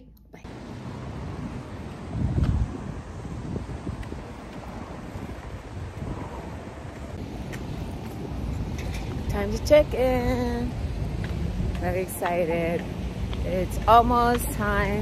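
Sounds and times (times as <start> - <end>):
wind buffeting microphone: 0.5 - 15.0.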